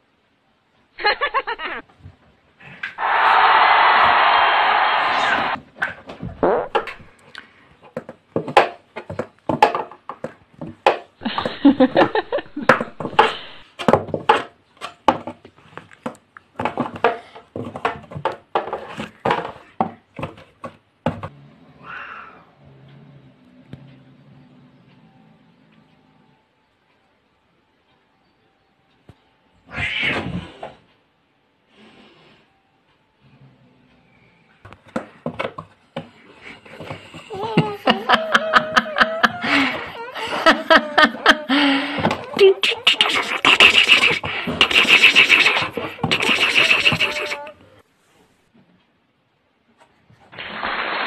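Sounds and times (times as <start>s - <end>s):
high pulsing laughter: 1.0s - 1.8s, 11.2s - 13.0s, 37.3s - 47.5s
cat meowing: 21.8s - 22.5s
knocks and scrapes on cardboard: 43.2s - 47.4s.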